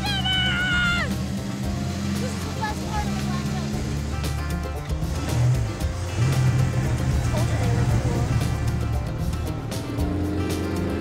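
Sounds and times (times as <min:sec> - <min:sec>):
background music: 0:00.0 - 0:11.0
race car engine running: 0:00.0 - 0:11.0
people talking: 0:02.1 - 0:04.0, 0:07.2 - 0:08.5.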